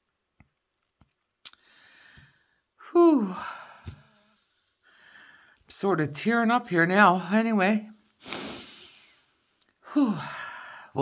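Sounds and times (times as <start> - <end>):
woman sighing: 1.6 - 5.4, 9.8 - 11.0
woman sniffling: 8.2 - 10.9.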